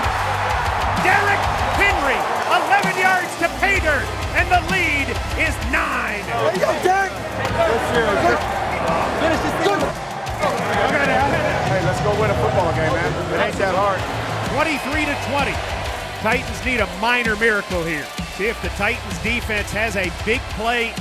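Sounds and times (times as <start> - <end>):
background music with bass: 0.0 - 21.0
men shouting excitedly: 0.0 - 21.0.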